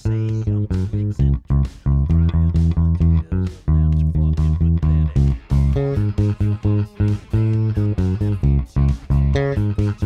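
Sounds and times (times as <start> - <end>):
bass guitar played fingerstyle: 0.0 - 10.0.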